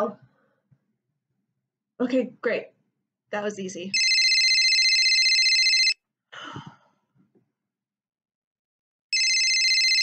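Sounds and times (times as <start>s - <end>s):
electronic telephone ringtone: 3.9s - 6.0s, 9.1s - 10.0s
person gasping: 6.3s - 7.0s.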